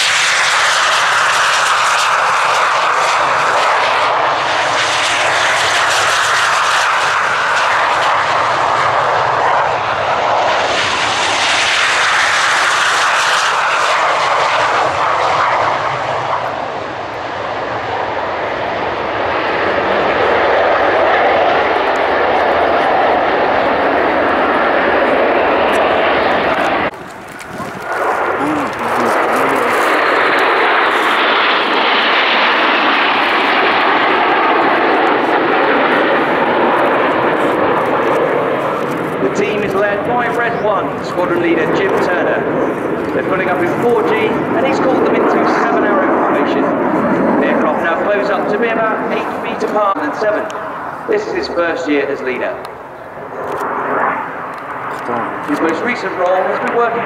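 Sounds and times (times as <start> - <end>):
jet aircraft taking off: 0.0 - 57.0.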